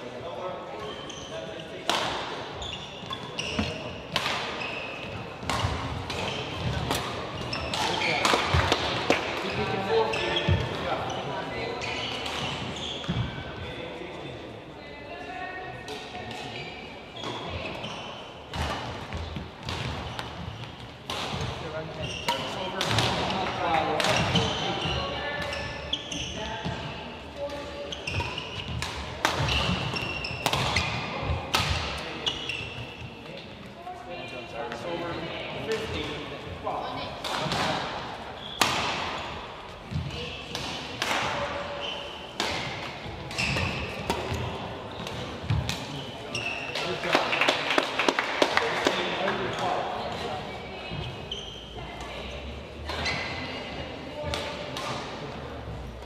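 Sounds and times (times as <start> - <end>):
rackets hitting shuttlecock: 1.8 - 2.4, 3.0 - 9.6, 18.5 - 21.6, 22.2 - 25.6, 27.5 - 32.8, 37.2 - 39.3, 39.9 - 41.6, 42.3 - 49.0, 54.3 - 55.2.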